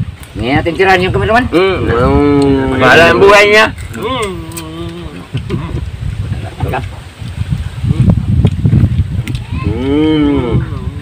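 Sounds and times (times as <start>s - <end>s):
man's drawn-out vocal phrases: 1.5s - 5.3s, 9.6s - 11.0s.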